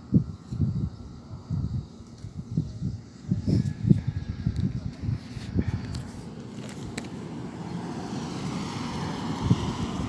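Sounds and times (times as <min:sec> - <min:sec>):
car driving slowly: 0:04.9 - 0:10.0.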